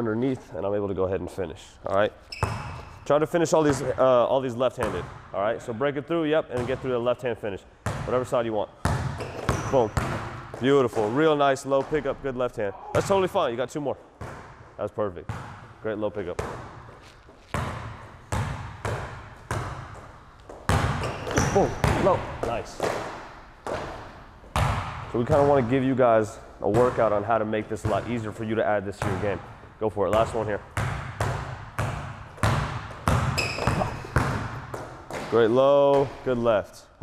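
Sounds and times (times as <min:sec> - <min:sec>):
basketball bouncing on court floor: 0:02.3 - 0:03.0, 0:03.6 - 0:04.1, 0:04.8 - 0:05.4, 0:07.8 - 0:12.2, 0:14.2 - 0:25.7, 0:26.6 - 0:36.3
high squeak: 0:02.3 - 0:03.0, 0:33.4 - 0:34.0.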